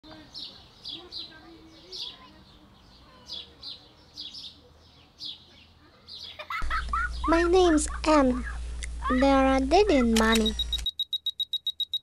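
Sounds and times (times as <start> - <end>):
small birds chirping: 0.0 - 10.9.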